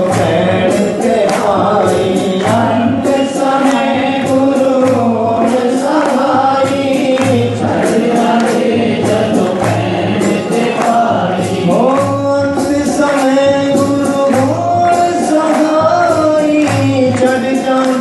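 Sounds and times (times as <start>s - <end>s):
chorus singing devotional song: 0.0s - 18.0s
instrumental accompaniment: 0.0s - 18.0s.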